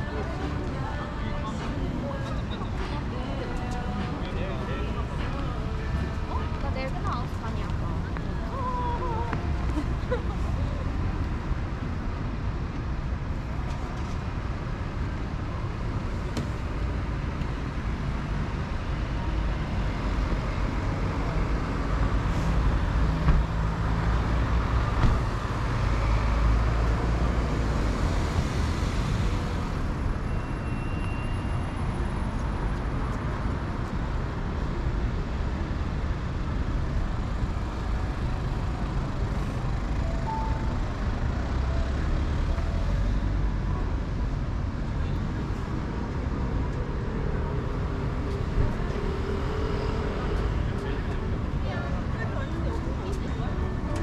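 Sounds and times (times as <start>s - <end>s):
traffic rumble: 0.0s - 54.0s.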